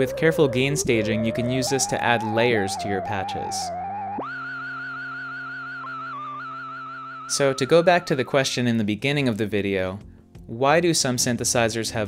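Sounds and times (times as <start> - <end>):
bass-heavy oscillator drone: 0.0 - 8.2
synthesizer high tone with vibrato: 0.0 - 8.4.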